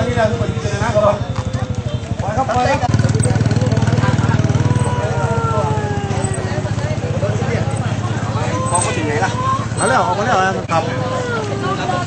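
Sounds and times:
people's voices: 0:00.0 - 0:12.0
small engine running: 0:00.0 - 0:12.0.

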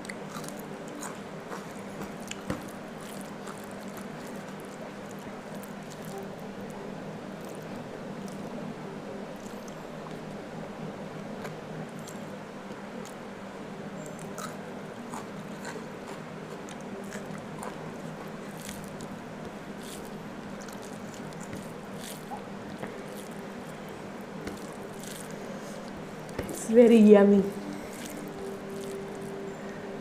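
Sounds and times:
steady low hum: 0:00.0 - 0:30.0.

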